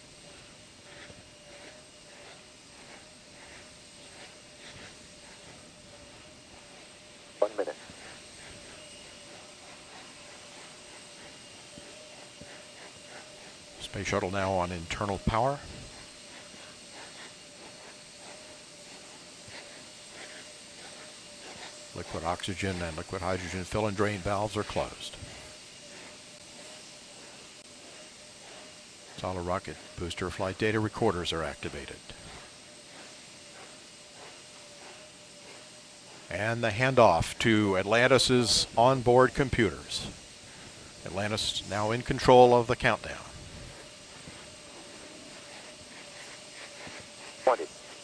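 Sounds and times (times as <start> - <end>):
faint steady hiss: 0.0 - 48.0
thin steady hum: 0.0 - 48.0.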